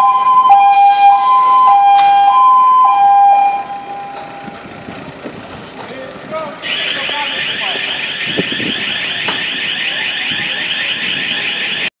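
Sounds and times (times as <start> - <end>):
warbling alarm: 0.0 - 4.7, 6.6 - 11.9.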